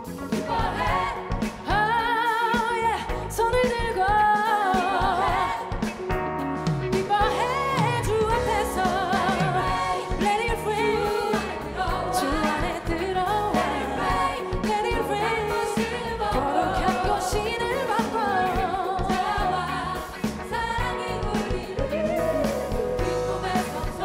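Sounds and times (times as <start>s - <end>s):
choir singing: 0.0s - 2.9s, 4.3s - 5.9s, 7.2s - 24.0s
woman singing lead: 0.0s - 6.1s, 6.9s - 24.0s
live band playing: 0.0s - 24.0s.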